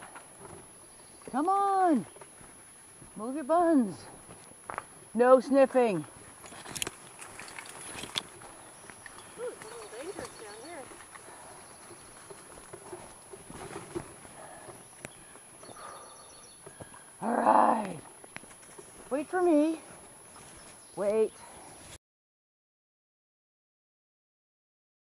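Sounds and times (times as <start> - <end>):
wheeled rig rolling on dirt: 0.0 - 21.9
clicks and rustling: 6.4 - 15.2.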